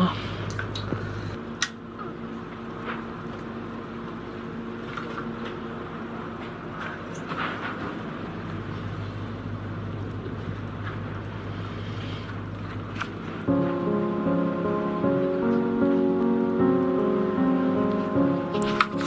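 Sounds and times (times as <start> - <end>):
low hum: 9.3 - 19.0.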